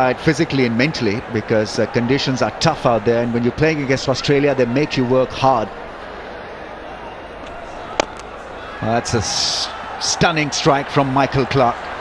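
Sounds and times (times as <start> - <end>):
stadium crowd noise: 0.0 - 12.0
cricket bat striking ball: 7.9 - 8.3.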